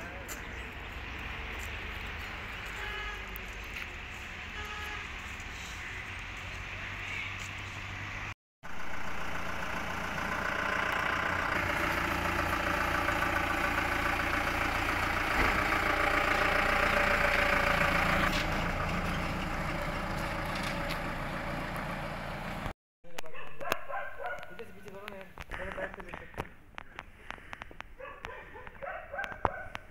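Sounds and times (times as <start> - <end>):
vehicle engine passing by: 0.0 - 22.7.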